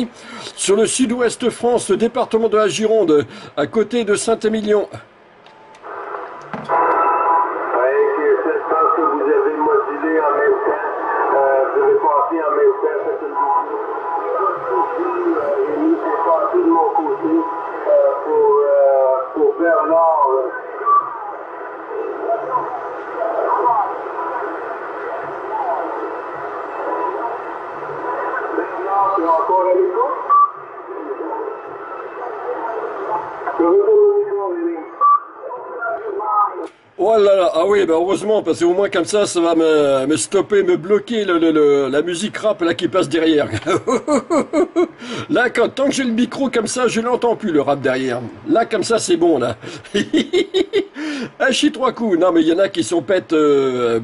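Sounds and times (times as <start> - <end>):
steady interfering tones: 5.6 - 43.5
voice over radio speaker: 6.7 - 36.7.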